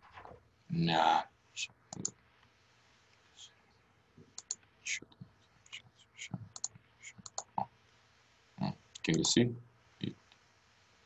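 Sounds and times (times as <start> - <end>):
mouse and keyboard clicks: 4.3 - 4.7, 6.5 - 7.5, 9.0 - 9.4.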